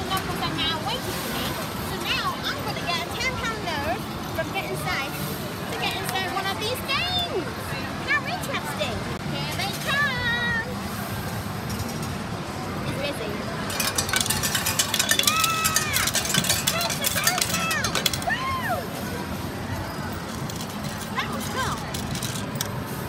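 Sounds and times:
coins clattering from change machine: 0:13.6 - 0:18.6, 0:20.0 - 0:23.0.

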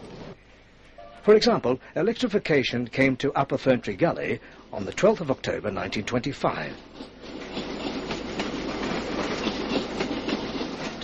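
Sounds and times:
train rumbling on rails: 0:03.9 - 0:11.0
faint clicks of train wheels: 0:04.5 - 0:11.0.

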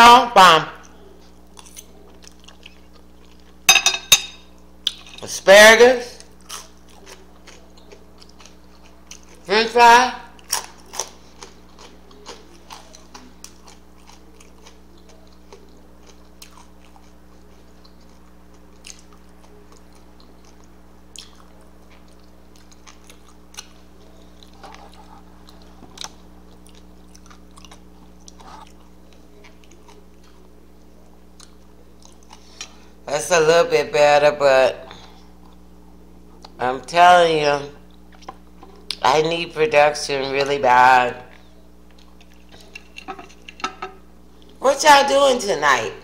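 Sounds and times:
steady low hum: 0:00.0 - 0:46.0
person chewing food: 0:00.8 - 0:03.7, 0:06.2 - 0:09.5, 0:10.3 - 0:33.0, 0:34.9 - 0:36.6, 0:37.8 - 0:39.0, 0:41.3 - 0:44.6.

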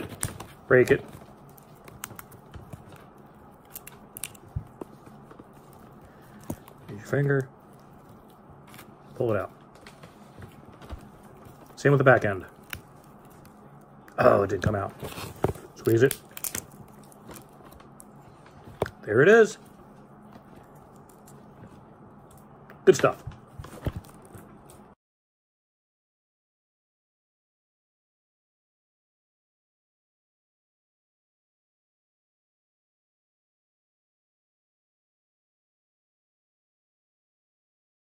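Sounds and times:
crab shell cracking: 0:03.5 - 0:04.8, 0:12.5 - 0:13.9, 0:15.4 - 0:18.1.

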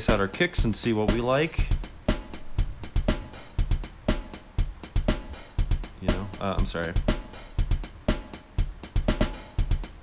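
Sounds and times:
drum machine beat: 0:00.0 - 0:10.0.

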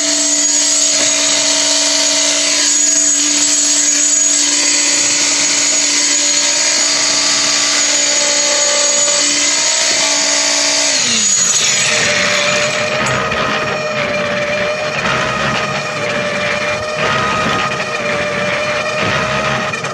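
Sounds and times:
concrete vibrator motor whining: 0:00.0 - 0:19.9.

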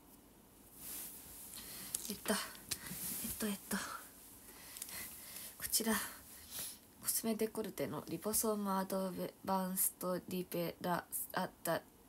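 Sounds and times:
woman whispering: 0:02.0 - 0:04.1, 0:05.6 - 0:06.2.

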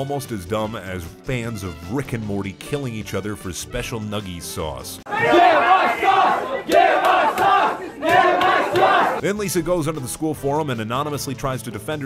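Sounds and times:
crowd shouting in unison: 0:05.1 - 0:09.2.

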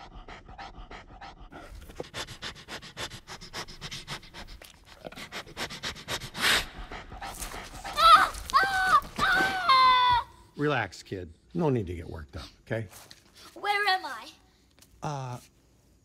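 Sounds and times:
bear sniffing rapidly: 0:00.0 - 0:08.0
bear breathing loudly: 0:00.0 - 0:08.5.

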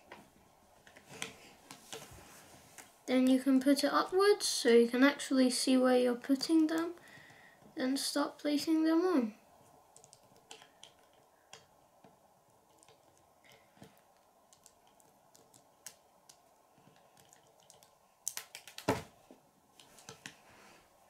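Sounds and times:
plastic pieces clicking: 0:09.9 - 0:11.7, 0:12.7 - 0:18.9.

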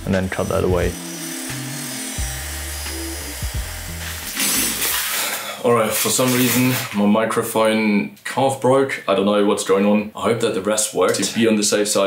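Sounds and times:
background music with bass line: 0:00.0 - 0:05.0
grinder cutting metal: 0:00.0 - 0:07.0.

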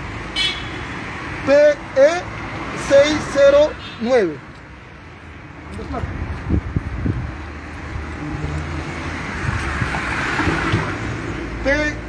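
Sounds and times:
traffic engine hum: 0:00.0 - 0:12.0
car passing: 0:00.8 - 0:12.0.

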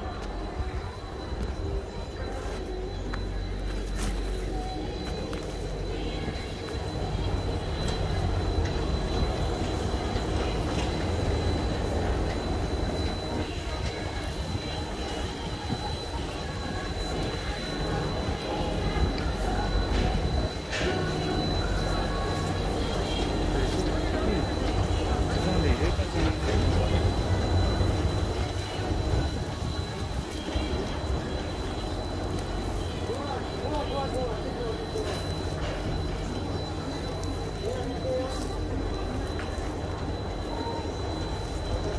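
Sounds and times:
faint high whine: 0:00.0 - 0:41.9
low mechanical rumble: 0:00.0 - 0:41.9.

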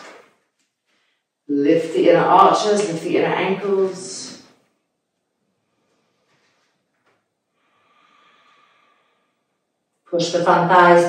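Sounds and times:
faint breathy exhale: 0:07.6 - 0:09.4.

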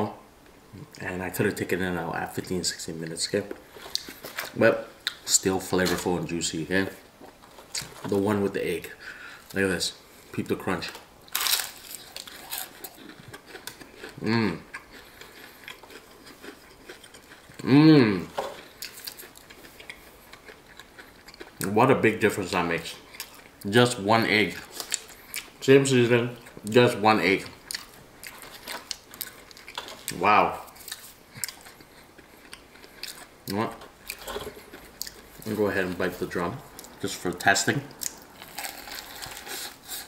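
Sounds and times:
chewing crunches: 0:11.3 - 0:21.7, 0:22.9 - 0:23.6, 0:27.5 - 0:36.0, 0:37.9 - 0:40.0.

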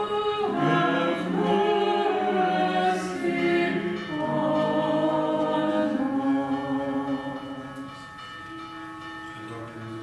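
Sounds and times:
unaccompanied choral chant: 0:00.0 - 0:08.0.

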